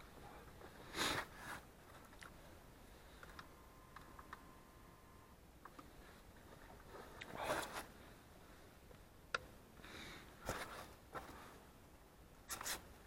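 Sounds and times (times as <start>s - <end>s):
rubbing and scraping handling noise: 0.1s - 4.4s, 5.7s - 8.6s, 10.4s - 11.7s.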